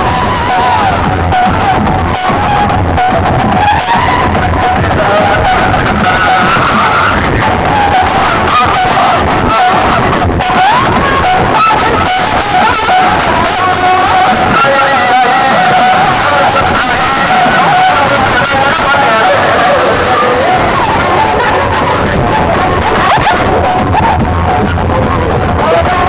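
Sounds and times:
loud music from horn loudspeakers: 0:00.0 - 0:26.0.

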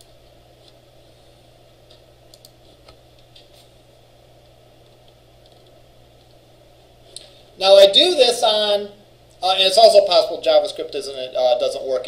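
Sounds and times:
low room hum: 0:00.0 - 0:12.0
faint computer clicks: 0:01.8 - 0:03.6, 0:04.4 - 0:06.4.

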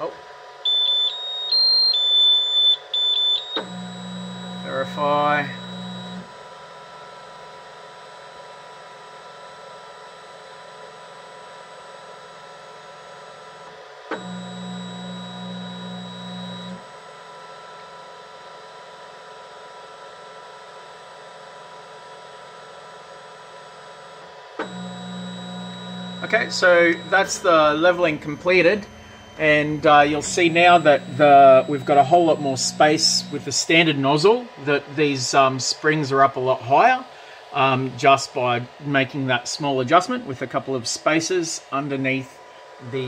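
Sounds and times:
printer fans whining: 0:00.0 - 0:17.9, 0:21.0 - 0:43.0
motor hum: 0:02.9 - 0:17.4, 0:22.7 - 0:36.0.

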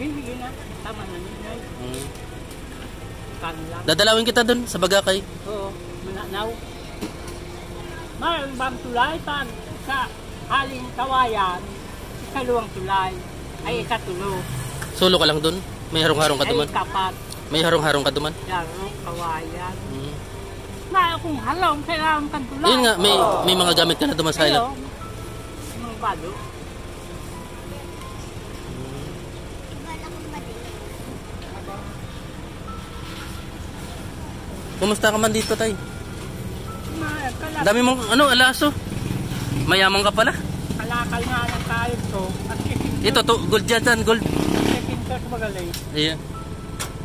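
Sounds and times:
low rumble of traffic: 0:00.0 - 0:47.0
man talking: 0:22.6 - 0:24.7.

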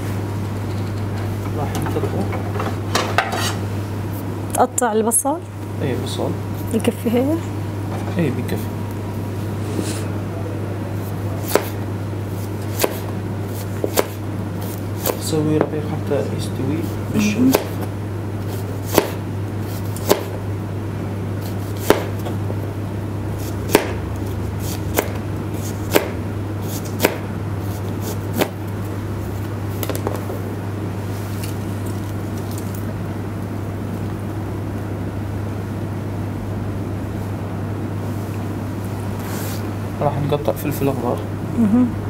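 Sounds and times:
low electrical hum: 0:00.0 - 0:42.0.

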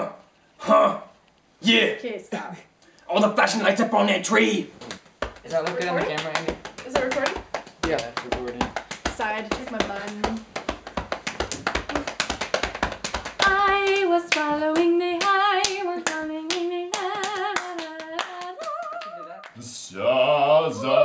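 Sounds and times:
voices: 0:03.4 - 0:10.4, 0:18.4 - 0:21.0
people clapping hands fast: 0:04.8 - 0:19.6.

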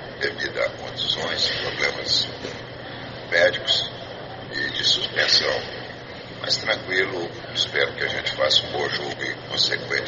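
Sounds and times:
man speaking: 0:00.2 - 0:02.4, 0:03.3 - 0:10.0.

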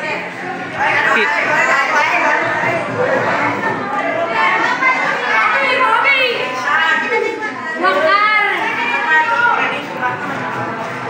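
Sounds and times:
children talking and calling: 0:00.0 - 0:11.0.

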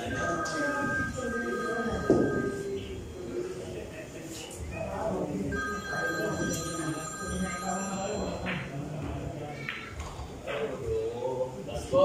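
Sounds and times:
electronic ringing tone: 0:00.0 - 0:03.1, 0:05.5 - 0:08.7
murmur of voices: 0:00.0 - 0:12.0.

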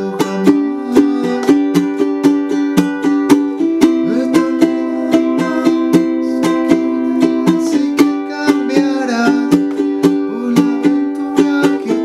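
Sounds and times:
ukulele strumming: 0:00.0 - 0:12.0.

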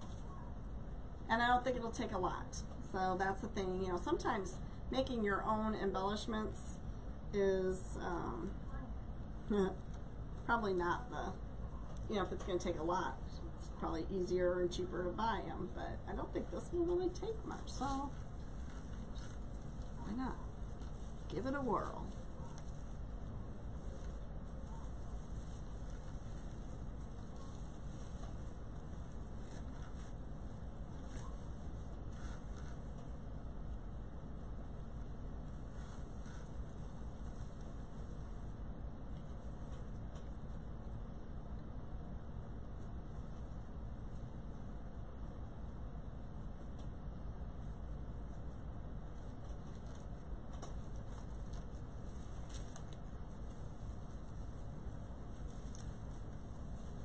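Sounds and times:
low room hum: 0:00.0 - 0:57.0
ribbon and mesh rustling: 0:10.7 - 0:34.0, 0:34.8 - 0:40.6, 0:49.0 - 0:57.0.

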